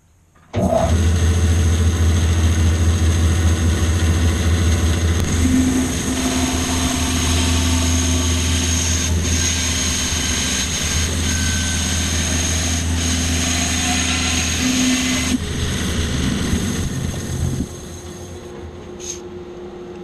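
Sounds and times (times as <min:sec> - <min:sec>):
bandsaw cutting log: 0:05.2 - 0:18.3.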